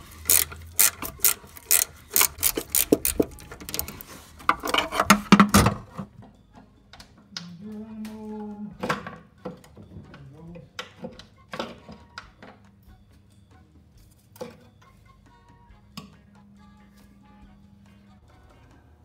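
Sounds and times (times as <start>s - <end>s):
ratcheting wrench clicking: 0.0s - 4.1s.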